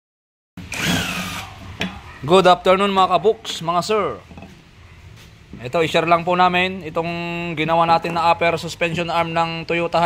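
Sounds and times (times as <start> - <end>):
cordless power tool motor whine: 0.6 - 1.5.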